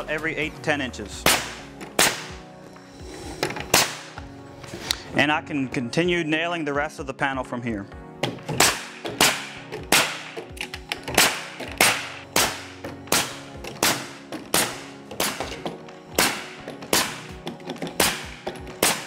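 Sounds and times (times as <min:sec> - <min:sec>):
nail gun shots into wood: 0:01.2 - 0:02.4, 0:03.7 - 0:04.2, 0:08.2 - 0:19.0.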